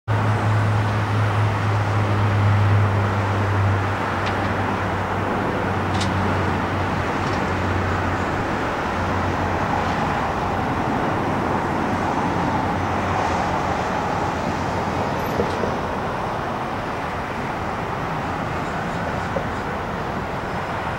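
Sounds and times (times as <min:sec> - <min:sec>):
road traffic: 0:00.1 - 0:20.9.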